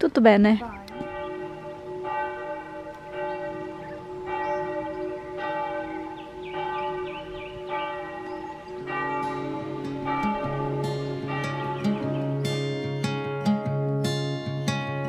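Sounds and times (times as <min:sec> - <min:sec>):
church bell ringing: 0:00.8 - 0:15.0.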